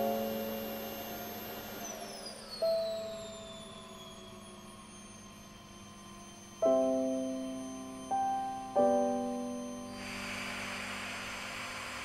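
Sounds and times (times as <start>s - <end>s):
vacuum cleaner spinning down: 0.0s - 12.0s
piano chord: 6.6s - 10.3s.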